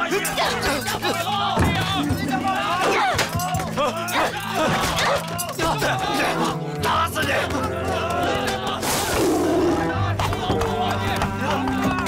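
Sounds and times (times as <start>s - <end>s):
music: 0.0s - 12.0s
people shouting: 0.0s - 12.0s.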